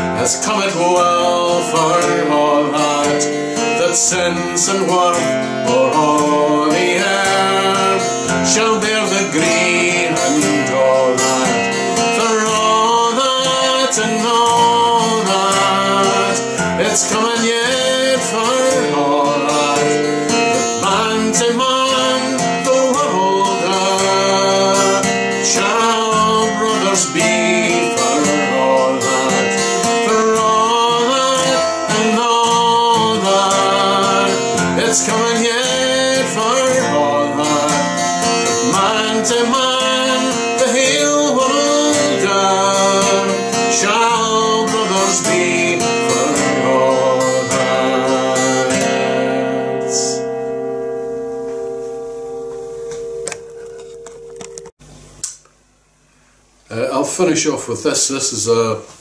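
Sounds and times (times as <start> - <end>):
man singing: 0.0 - 50.3
acoustic guitar: 0.0 - 55.3.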